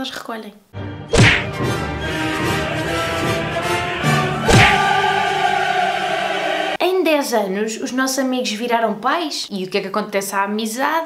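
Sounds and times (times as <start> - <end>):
thump: 1.2 - 1.5, 4.5 - 4.9
choir holding a chord: 1.6 - 6.8.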